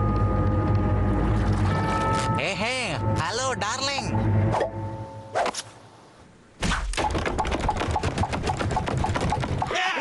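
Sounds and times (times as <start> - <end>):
cartoon running footsteps on wood: 7.0 - 9.8.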